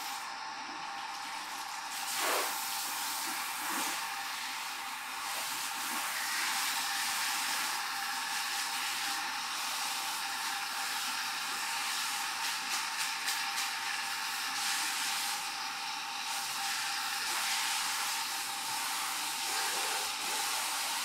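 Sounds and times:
water spraying from sprayer: 0.0s - 21.0s.

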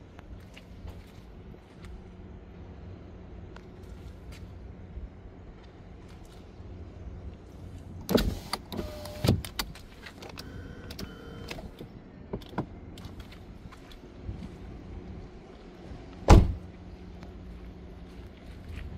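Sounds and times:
power window motor whining: 8.1s - 9.5s
car door knocks with rattles: 16.3s - 16.6s.

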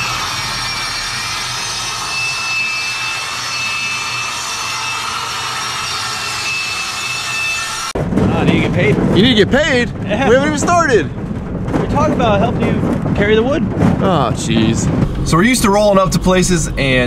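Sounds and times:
thin high tone: 0.0s - 7.9s
panel saw cutting board: 0.0s - 8.0s.

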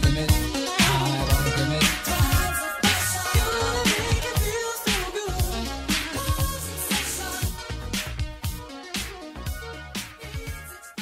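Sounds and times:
dance-pop music: 0.0s - 11.0s.

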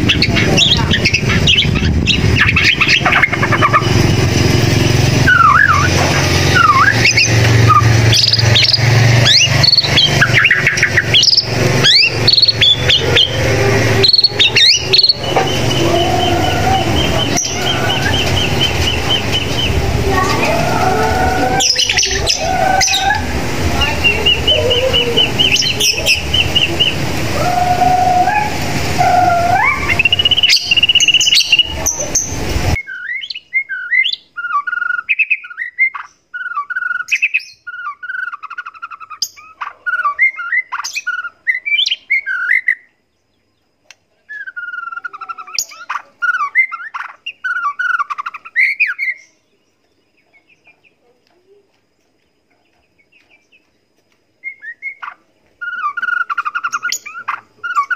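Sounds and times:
bird whistling and warbling: 0.0s - 42.9s, 44.3s - 49.4s, 54.4s - 57.9s
steady hiss: 11.0s - 32.8s.

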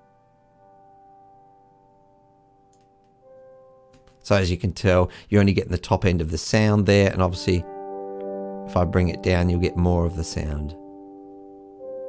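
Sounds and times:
thin filtered piano notes: 7.1s - 12.0s.

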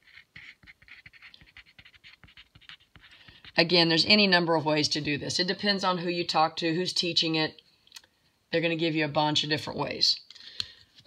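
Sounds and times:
pencil scratching on paper: 0.0s - 3.8s.

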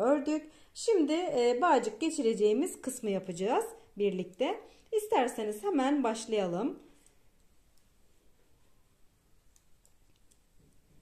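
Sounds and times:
knitting needles clicking: 7.0s - 8.0s, 9.4s - 10.9s.

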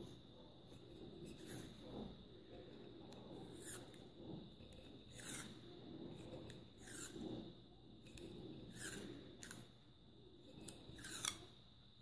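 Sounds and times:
paper tape rasping on glass: 0.0s - 9.7s, 10.5s - 11.5s.

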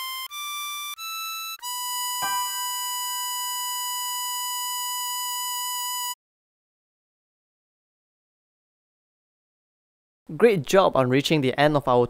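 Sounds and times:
harmonica steady high note: 0.0s - 6.2s.

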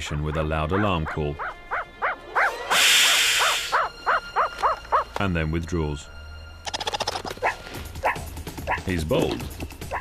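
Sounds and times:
meerkat barking alarm call: 0.3s - 5.1s, 7.4s - 8.9s
cobra hissing: 2.4s - 5.0s.

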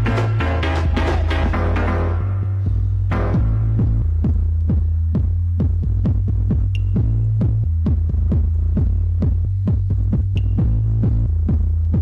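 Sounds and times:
droning bass line: 0.0s - 12.0s
electronic dance music: 0.0s - 12.0s
heavy kick drum: 0.0s - 12.0s.

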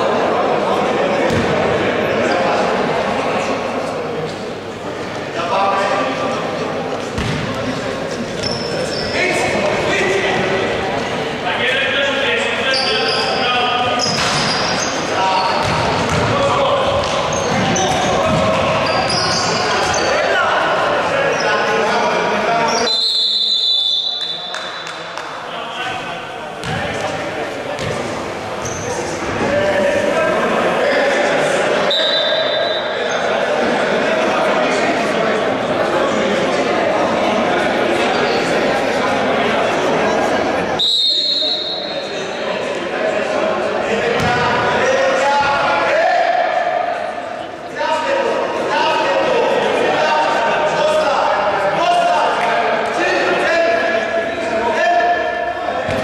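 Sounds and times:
players' voices echoing: 0.0s - 56.0s
basketball bouncing on wooden floor: 7.2s - 7.4s.

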